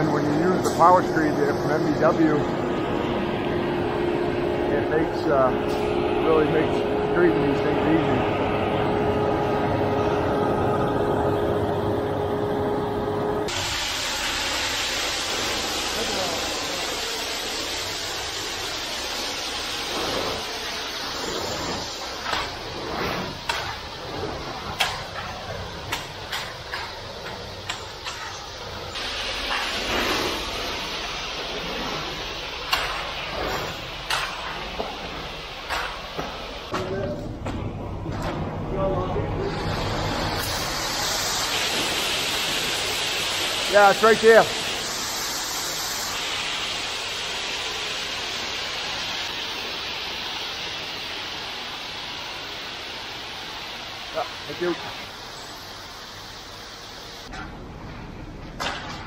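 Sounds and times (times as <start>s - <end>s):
steady hiss: 0.0s - 8.9s, 13.4s - 37.4s, 38.7s - 57.3s
steady engine drone: 0.0s - 47.4s
hand tools scraping wet concrete: 19.9s - 28.5s, 31.4s - 36.9s.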